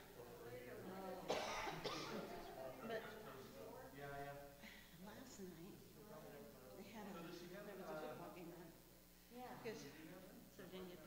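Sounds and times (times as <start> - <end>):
person coughing: 1.3 - 2.3.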